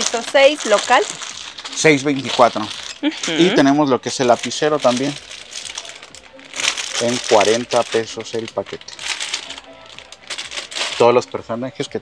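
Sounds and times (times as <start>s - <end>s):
plastic bag crinkling: 0.0s - 11.3s.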